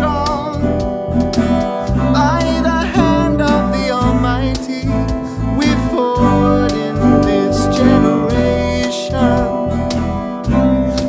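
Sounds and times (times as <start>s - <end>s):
acoustic guitar strumming chords: 0.0s - 11.0s
deep sustained bass line: 0.0s - 11.0s.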